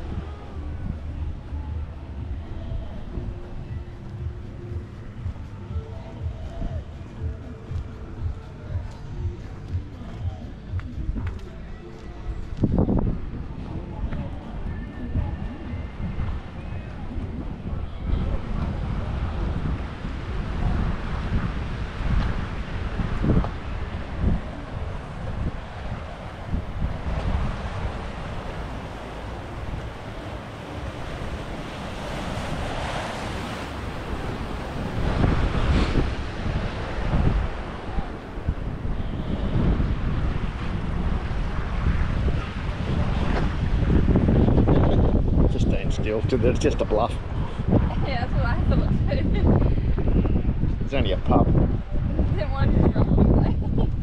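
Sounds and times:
wind buffeting microphone: 0.0 - 54.0
water washing: 18.6 - 44.7.

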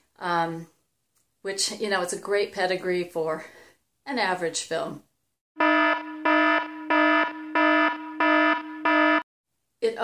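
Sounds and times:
buzzy warning alarm tone: 5.6 - 9.2.

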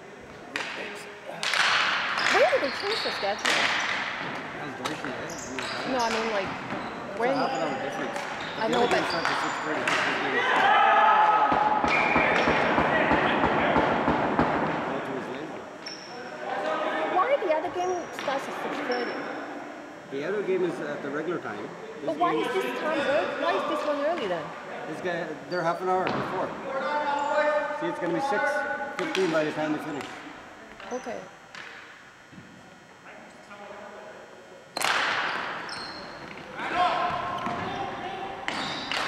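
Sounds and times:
hockey sticks and ball clacking: 0.6 - 0.8, 1.4 - 6.9, 8.1 - 10.7, 11.5 - 14.8, 29.0 - 30.2, 31.5 - 31.8, 34.8 - 37.7, 38.4 - 39.0
players shouting: 10.3 - 14.2.

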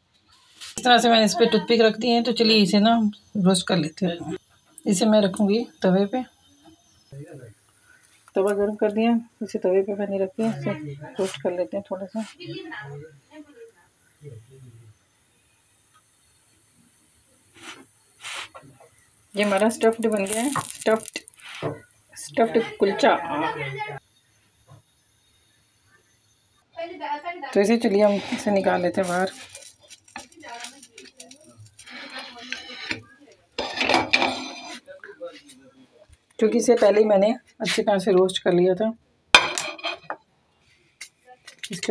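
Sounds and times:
short hisses: 17.5 - 18.6
griddle and ceramic plate clinking: 33.6 - 34.8, 39.4 - 40.2.

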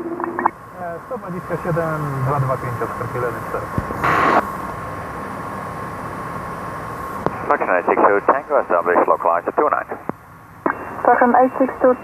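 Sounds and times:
aircraft engine and cabin drone: 0.0 - 12.0
radio static burst: 1.2 - 4.4.

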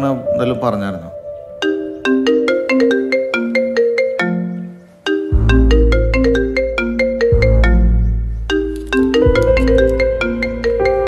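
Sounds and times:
marimba-like phone ringtone: 1.2 - 11.0.

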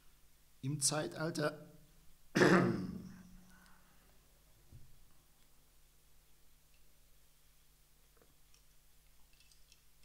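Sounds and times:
man coughing: 2.4 - 3.2.

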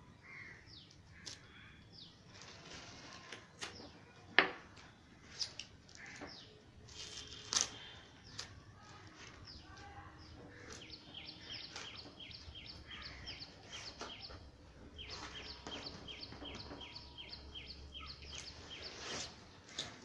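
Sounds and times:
bird chirping: 9.2 - 20.0.

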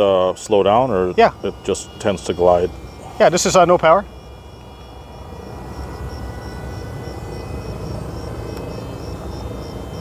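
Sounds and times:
rc plane gliding rush: 0.0 - 10.0.

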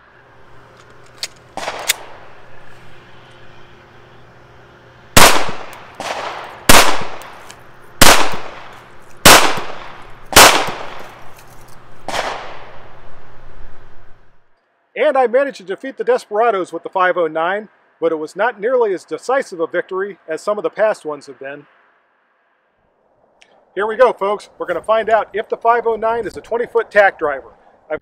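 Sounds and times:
pistol shots with echo: 1.6 - 2.2, 5.2 - 7.3, 8.0 - 11.2, 12.1 - 12.8.

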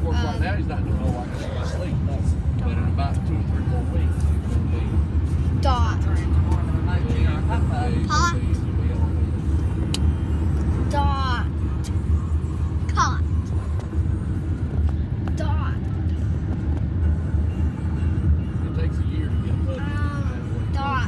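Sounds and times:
road rumble inside car: 0.0 - 21.0.

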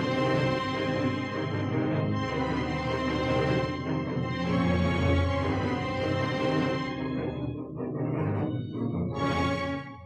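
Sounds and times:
orchestral strings playing: 0.0 - 10.0.

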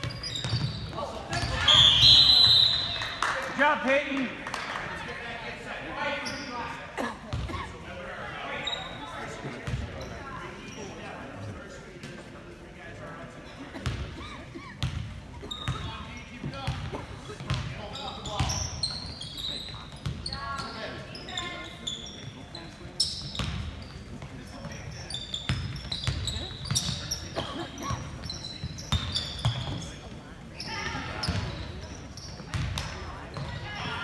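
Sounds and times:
sneaker squeaks: 0.0 - 3.2, 6.0 - 7.8, 8.5 - 11.5, 13.8 - 34.0.

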